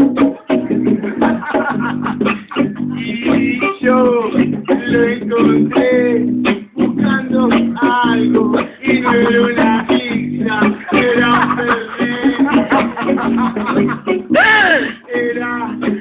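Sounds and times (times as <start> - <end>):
music with strummed guitar: 0.0 - 16.0.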